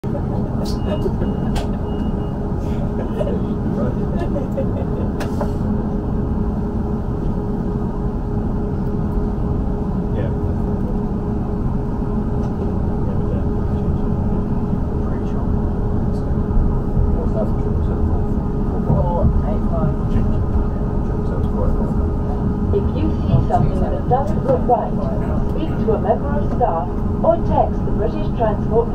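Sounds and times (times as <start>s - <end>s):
constant hum: 0.0s - 28.9s
train running gear rumble: 0.0s - 28.9s.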